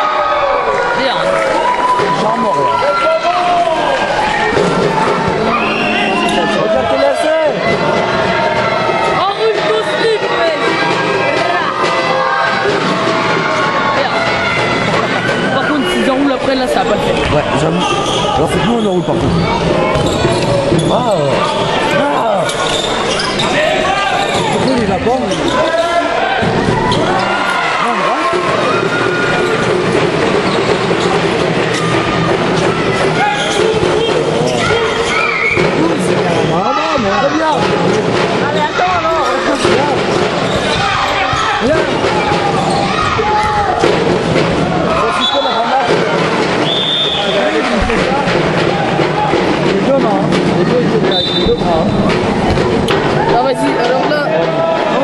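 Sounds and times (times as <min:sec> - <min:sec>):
echoing voices in hall: 0:00.0 - 0:55.0
shoe squeaks: 0:17.6 - 0:21.7, 0:22.4 - 0:24.7, 0:33.2 - 0:35.6, 0:51.1 - 0:52.1.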